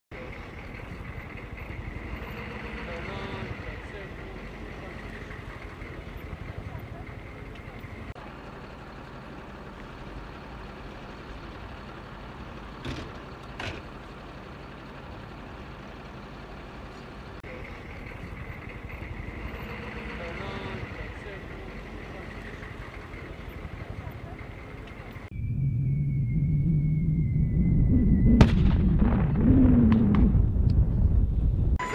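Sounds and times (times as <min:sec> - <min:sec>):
steady low rumble: 0:20.9 - 0:31.8.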